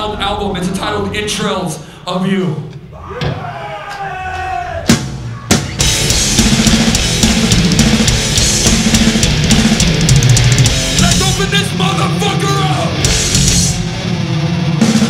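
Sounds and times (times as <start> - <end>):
death metal band playing: 0.0 - 2.6, 5.8 - 15.0.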